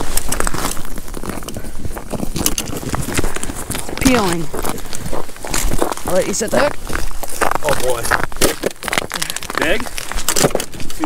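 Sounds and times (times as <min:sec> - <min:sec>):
footsteps crunching on snow: 0:00.0 - 0:11.0.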